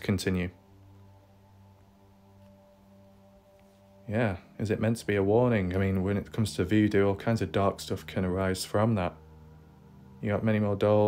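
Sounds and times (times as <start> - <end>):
faint droning background music: 0.0 - 11.0.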